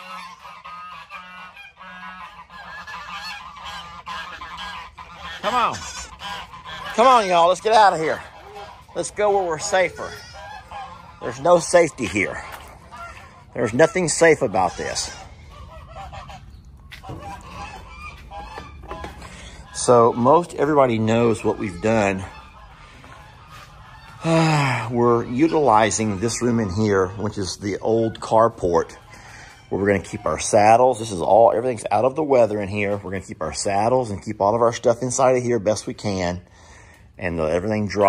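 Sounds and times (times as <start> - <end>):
geese honking: 0.0 - 38.0
people talking: 5.4 - 6.2, 6.8 - 10.2, 11.2 - 12.6, 13.6 - 15.2, 19.7 - 22.4, 24.2 - 29.1, 29.7 - 36.4, 37.2 - 38.0.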